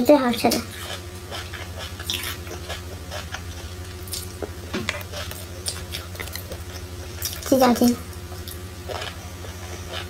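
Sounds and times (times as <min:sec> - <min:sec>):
close-up chewing and mouth sounds: 0:00.4 - 0:10.0.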